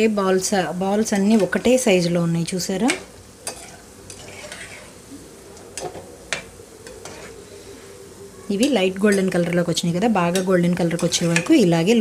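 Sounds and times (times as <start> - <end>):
dough balls sizzling in oil: 0.0 - 12.0
metal ladle stirring: 3.4 - 5.0.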